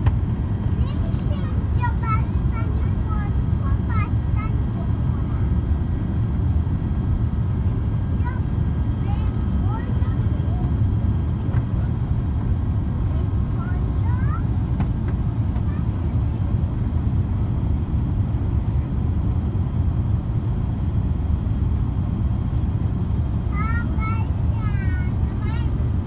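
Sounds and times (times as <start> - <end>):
airliner cabin rumble: 0.0 - 26.0.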